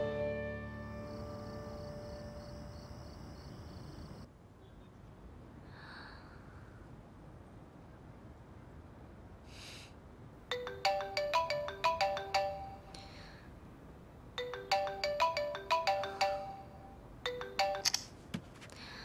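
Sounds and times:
smartphone ringtone melody: 10.5 - 13.3, 14.4 - 18.0.

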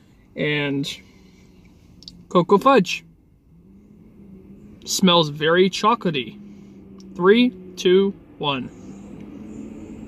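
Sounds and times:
low car cabin hum: 0.0 - 10.0.

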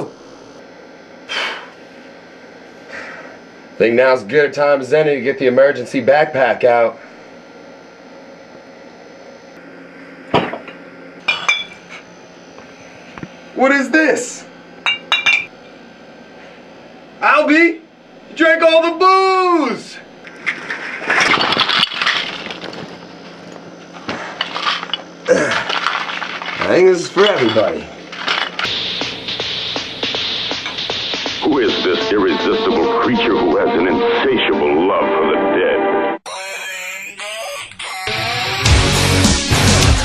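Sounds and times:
bottles clattering onto hard floor: 20.6 - 22.9.

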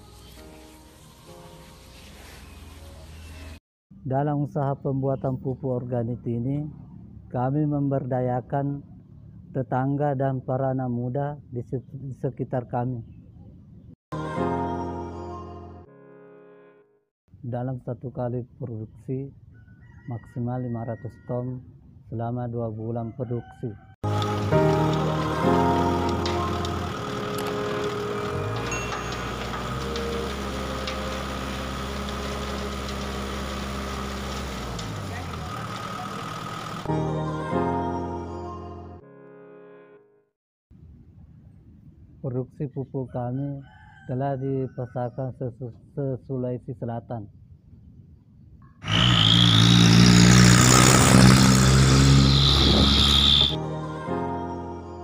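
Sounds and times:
background music: 24.0 - 31.6, 36.9 - 40.2, 53.3 - 55.0
tractor engine running: 24.0 - 36.9, 48.8 - 53.6
short scattered clicks: 24.1 - 36.8
loud noisy sound effect: 48.8 - 53.6.

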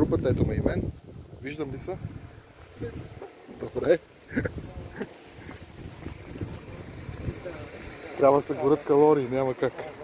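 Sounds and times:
wind rumble on microphone: 0.0 - 3.2, 4.3 - 8.0.

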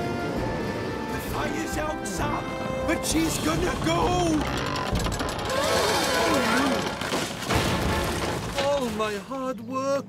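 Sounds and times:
dramatic music: 0.0 - 8.4
cracking and crashing: 3.2 - 9.3.

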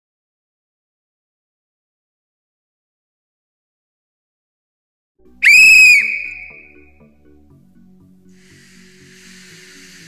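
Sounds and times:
quiet music: 5.2 - 10.0
loud high whistle blast: 5.4 - 6.8.

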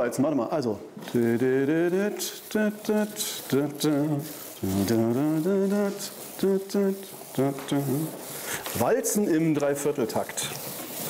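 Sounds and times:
man humming a waltz tune: 1.3 - 8.1.

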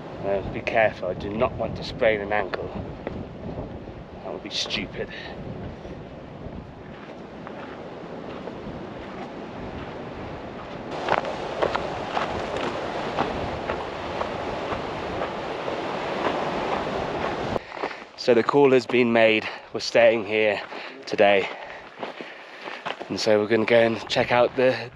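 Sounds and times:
wind buffeting microphone: 0.0 - 17.7
footsteps crunching on gravel: 6.8 - 19.6, 20.4 - 24.7.

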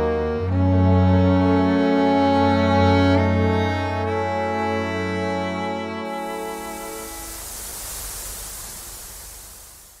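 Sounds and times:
static hiss: 2.1 - 10.0.

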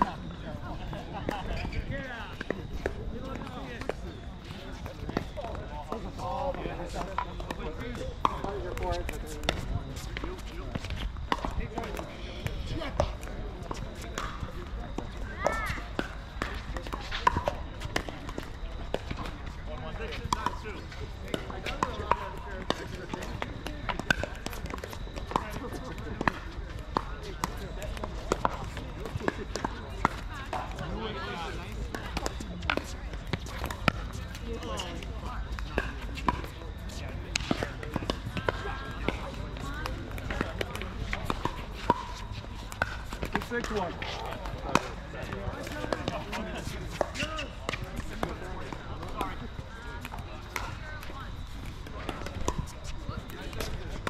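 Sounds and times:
players talking: 0.0 - 54.0.

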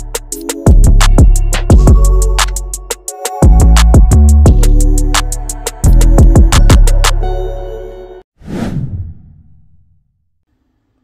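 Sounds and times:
electronic music: 0.0 - 8.3
whoosh transition effect: 8.4 - 10.0.

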